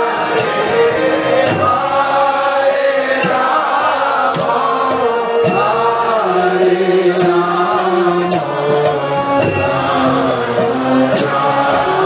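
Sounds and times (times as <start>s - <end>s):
devotional mantra chanting: 0.0s - 12.0s
sustained held accompaniment: 0.0s - 12.0s
sharp strikes: 0.2s - 12.0s.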